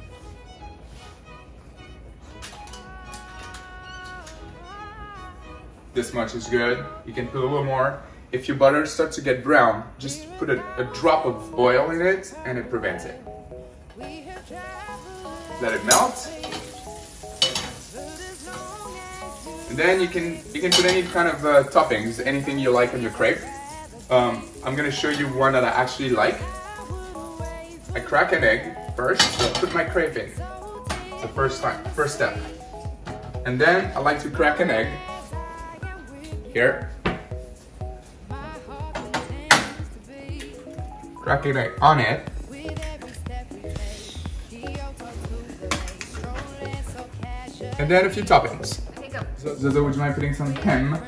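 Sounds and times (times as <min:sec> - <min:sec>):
background music: 0:00.0 - 0:51.0
butter sizzling in a pan: 0:14.2 - 0:32.8.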